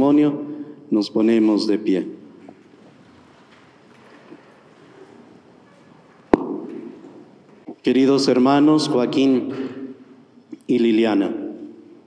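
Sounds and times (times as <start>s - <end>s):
people shuffling to their feet: 1.3s - 7.9s
sharp knock ringing in a church: 6.3s - 6.9s.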